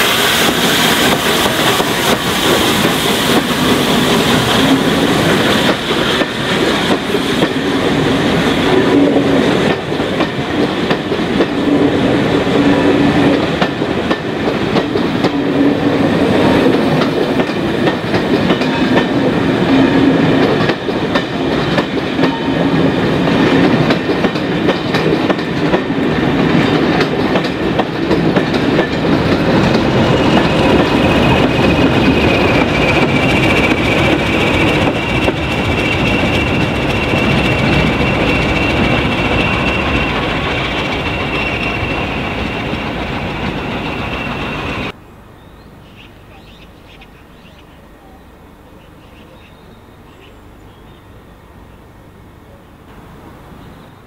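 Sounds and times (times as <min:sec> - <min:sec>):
steam hiss: 0:00.0 - 0:45.0
train wheels clicking over rail joints: 0:00.0 - 0:45.0.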